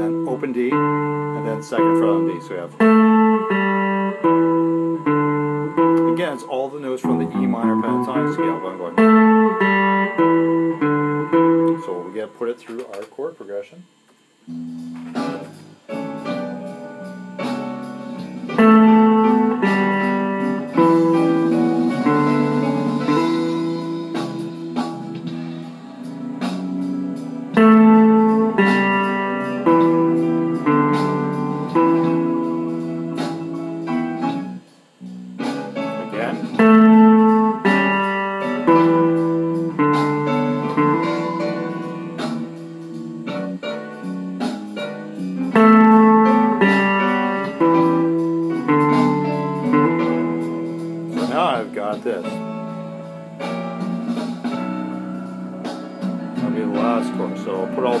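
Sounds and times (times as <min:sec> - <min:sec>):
electric guitar licks: 0:00.0 - 0:13.2, 0:14.2 - 0:58.0
slow blues backing track: 0:00.0 - 0:13.2, 0:13.8 - 0:58.0.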